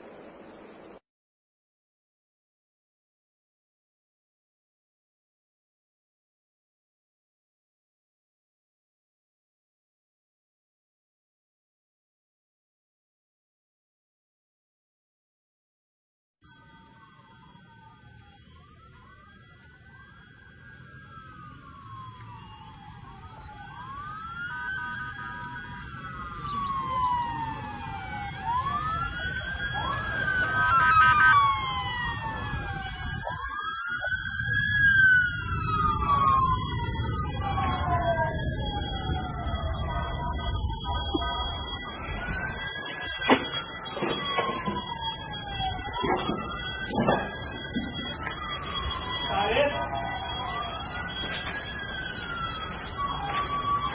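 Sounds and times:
emergency sirens wailing: 16.4s - 53.9s.

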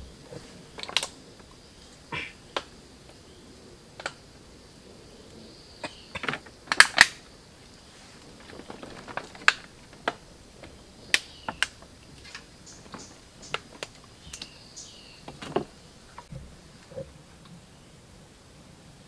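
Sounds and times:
bamboo poles clicking and knocking: 0.0s - 3.2s, 3.9s - 4.3s, 5.8s - 17.1s.

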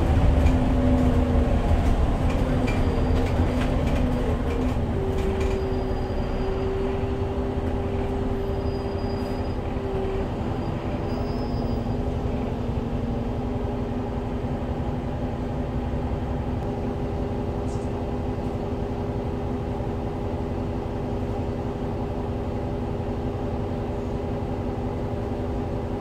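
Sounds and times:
bus diesel engine drone: 0.0s - 26.0s.

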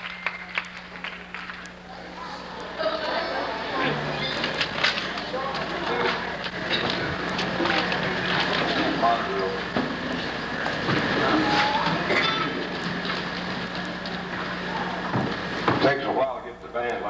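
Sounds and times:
low hum: 0.0s - 15.6s
murmur of voices: 0.0s - 17.0s.

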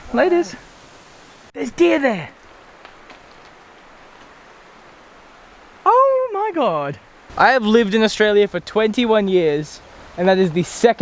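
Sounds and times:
faint steady hiss: 0.0s - 11.0s.

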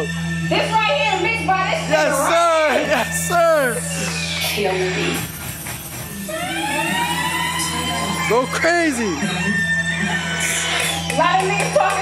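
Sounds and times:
siren sound effect: 0.0s - 11.7s.

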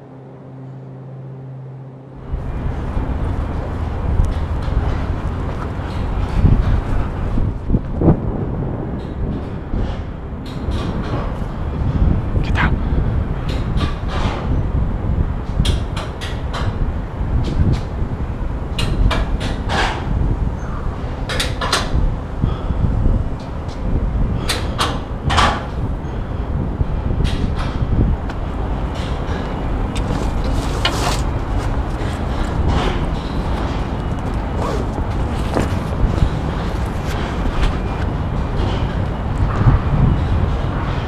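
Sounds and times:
low wind rumble: 0.0s - 41.0s.

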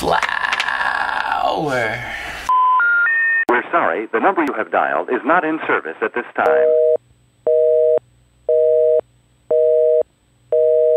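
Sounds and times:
telephone busy signal: 6.5s - 10.9s.

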